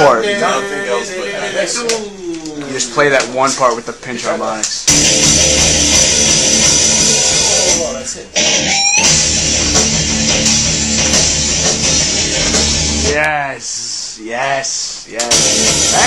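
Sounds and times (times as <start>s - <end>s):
high squealing guitar note bending: 4.9s - 13.1s
distorted electric guitar: 4.9s - 13.2s, 15.2s - 16.0s
heavy metal band playing: 4.9s - 13.2s, 15.3s - 16.0s.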